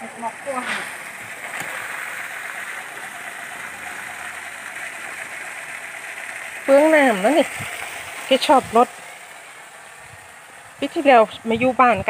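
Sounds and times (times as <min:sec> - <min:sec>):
woman speaking: 0:00.0 - 0:01.0, 0:06.7 - 0:07.6, 0:08.3 - 0:08.9, 0:10.8 - 0:12.0
outdoor background hiss: 0:00.0 - 0:12.0.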